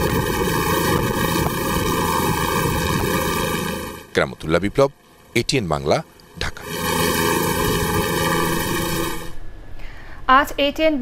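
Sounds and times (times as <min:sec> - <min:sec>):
helicopter flying overhead: 0:00.0 - 0:09.4.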